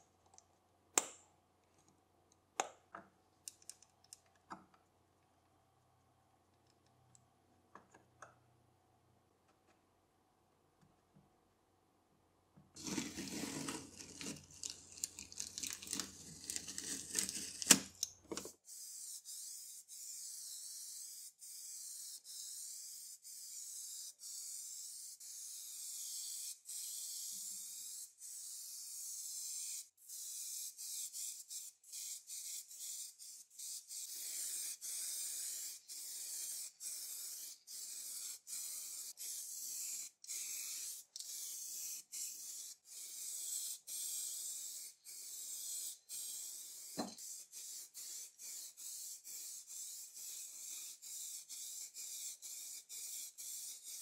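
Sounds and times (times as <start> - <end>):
spray paint can hissing: 18.7 - 54.0.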